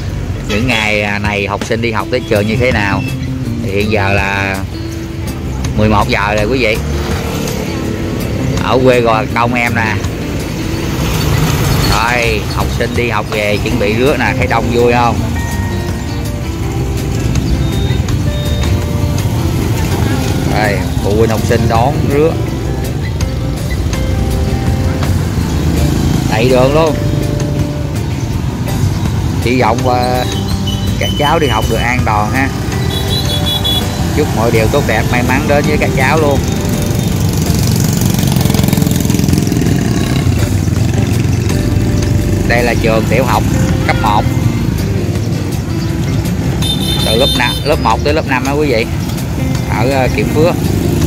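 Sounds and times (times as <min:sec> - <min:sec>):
motorbikes and scooters running: 0:00.0 - 0:51.0
music: 0:00.0 - 0:51.0
people's voices: 0:42.5 - 0:44.6.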